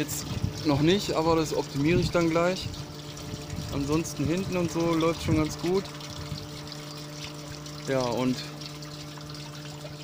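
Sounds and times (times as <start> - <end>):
water pump humming: 0.0 - 10.0
water trickling and dripping: 0.0 - 10.0.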